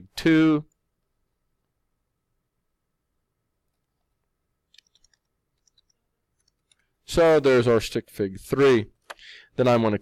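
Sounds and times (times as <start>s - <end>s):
computer mouse clicks: 4.7s - 6.9s.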